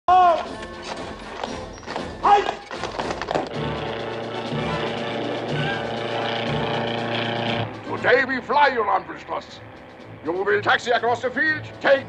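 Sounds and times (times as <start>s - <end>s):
film music: 0.1s - 12.0s
piston engine drone: 2.6s - 12.0s.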